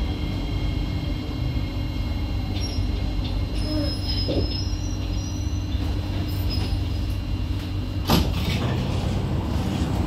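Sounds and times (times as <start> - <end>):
train hum: 0.0 - 10.0
train doors clunking open: 2.5 - 10.0.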